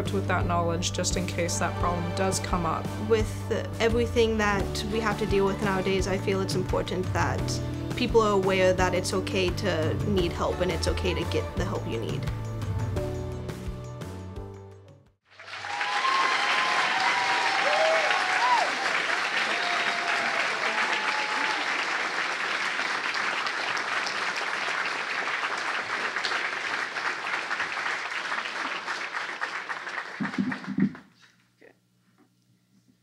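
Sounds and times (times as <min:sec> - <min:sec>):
audience applauding: 0:15.3 - 0:31.1
people cheering and whooping: 0:15.4 - 0:22.0.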